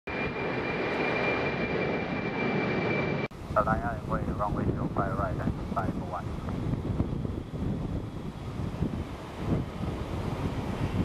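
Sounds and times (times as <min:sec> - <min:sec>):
high-pitched whine: 0:00.1 - 0:04.4
jet engine noise: 0:00.1 - 0:11.0.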